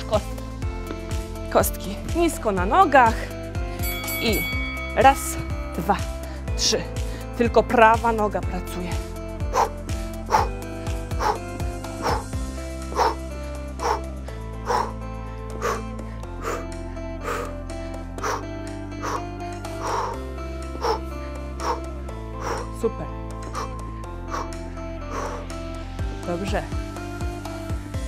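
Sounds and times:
workout music with steady beat: 2.9 - 28.0.

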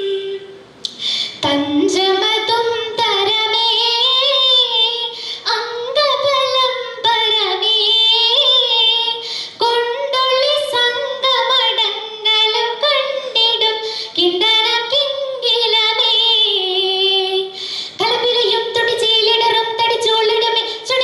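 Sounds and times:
girl singing solo into microphone: 0.0 - 21.0.

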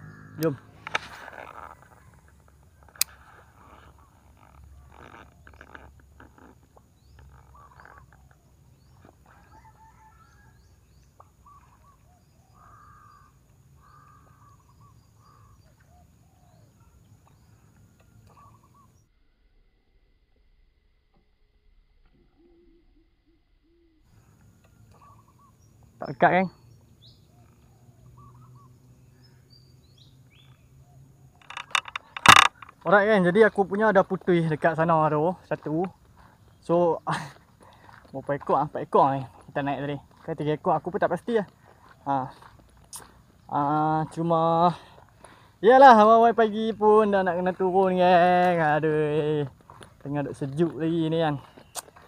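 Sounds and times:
short bird calls: 0.0 - 19.1, 22.3 - 33.0
faint outdoor ambience: 0.0 - 52.0
sharp click: 0.4 - 1.2, 31.4 - 32.8.

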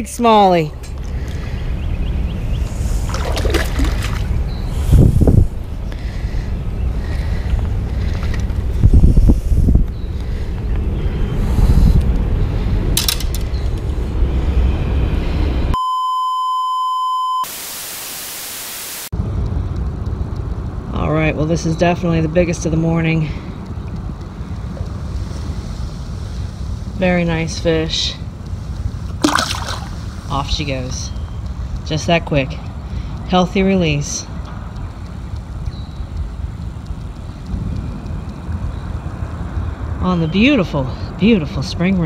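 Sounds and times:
rumbling wind: 0.0 - 15.8, 19.2 - 42.0
river noise: 0.4 - 8.8, 28.2 - 30.8
high beep tone: 15.8 - 17.5
flat static hiss: 17.2 - 19.1.

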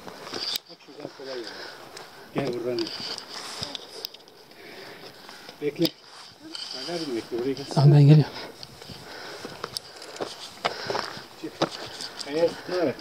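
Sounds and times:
voices: 0.6 - 13.0.

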